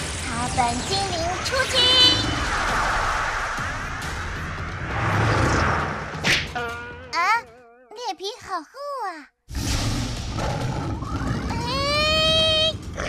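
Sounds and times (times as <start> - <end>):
music: 0.0 - 8.4, 9.5 - 13.0
sharp swish: 1.8 - 6.6.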